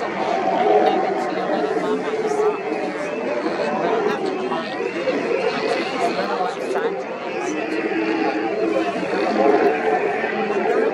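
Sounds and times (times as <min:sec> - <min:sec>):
sea lions growling: 0:00.0 - 0:10.9.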